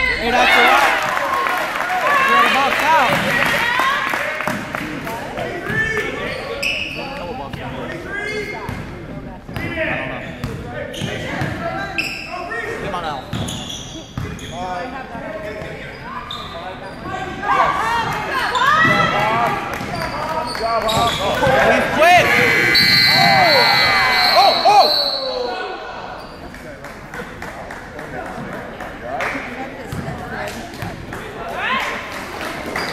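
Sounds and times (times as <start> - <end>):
sneakers squeaking on hardwood: 13.1 - 14.7
referee's whistle long note: 22.6 - 25.4.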